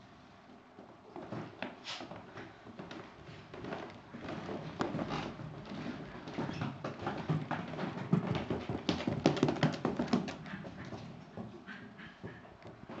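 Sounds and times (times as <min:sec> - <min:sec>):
dog shoes tapping on carpeted stairs: 0:01.2 - 0:13.0.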